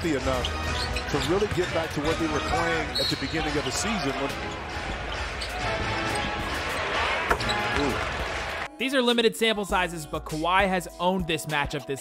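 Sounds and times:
crowd noise: 0.8s - 8.7s.

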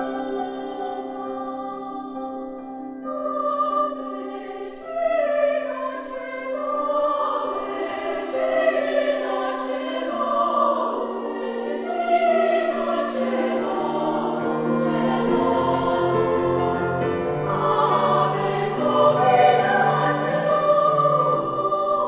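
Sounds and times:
women's choir singing: 0.0s - 22.0s
piano accompaniment: 6.7s - 22.0s.

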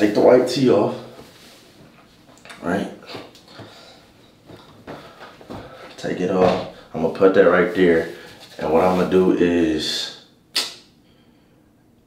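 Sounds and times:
faint knocks or steps: 1.1s - 6.8s.

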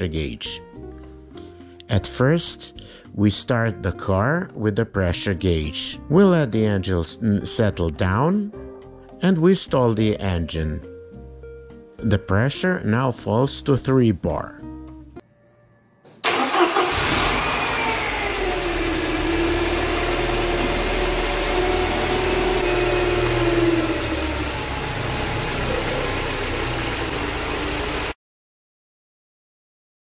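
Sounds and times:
car engine starting and idling: 16.2s - 28.2s.

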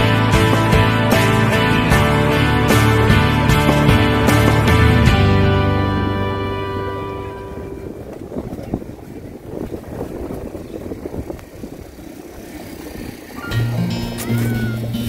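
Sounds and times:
background music: 0.0s - 8.1s
sustained bass notes: 0.0s - 11.9s, 13.4s - 15.0s
irregular low rumble: 0.0s - 14.1s
outdoor ambient noise: 0.0s - 15.0s.

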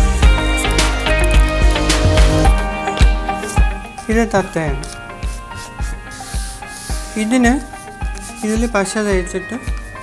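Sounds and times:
background music with steady beat: 0.0s - 10.0s
hand rubbing on paper: 3.3s - 10.0s
paper scraping hiss: 3.3s - 10.0s.

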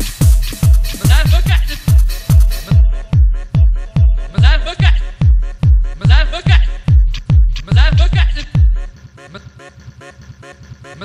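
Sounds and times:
stuttering vocal sample: 0.5s - 11.0s.

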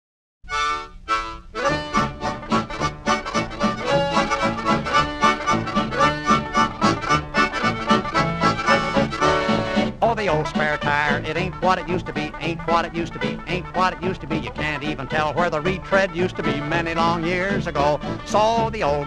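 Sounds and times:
bass notes on the beat: 0.5s - 19.0s
swing band music: 0.5s - 19.0s.

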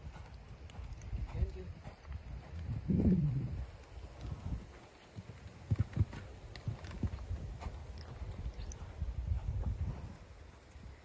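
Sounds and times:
horse hoofbeats on soft ground: 0.0s - 11.0s.

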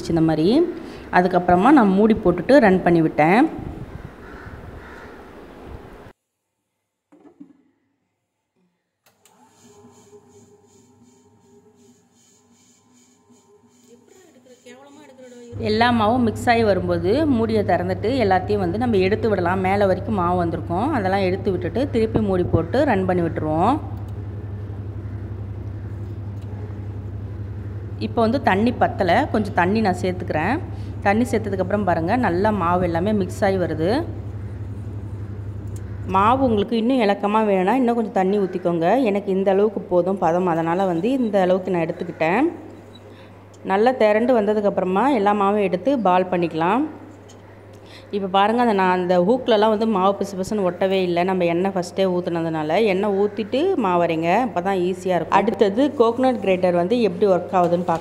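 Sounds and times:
wet grinder hum: 9.2s - 36.6s
grinder swishing: 9.3s - 15.6s.

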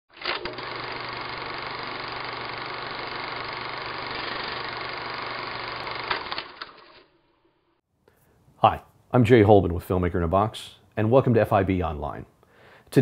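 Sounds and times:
machine humming: 0.3s - 6.8s.

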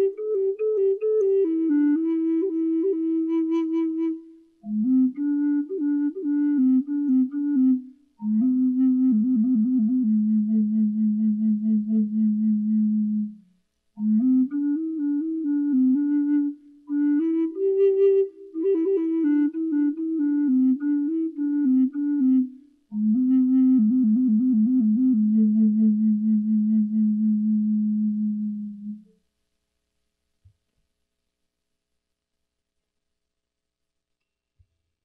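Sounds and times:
low wooden flute melody: 0.0s - 29.2s.

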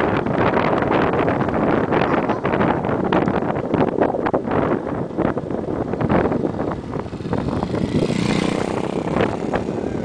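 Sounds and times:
bicycle road rattle: 0.0s - 10.0s
wind buffeting microphone: 0.0s - 10.0s
motor vehicle engine: 4.6s - 10.0s.

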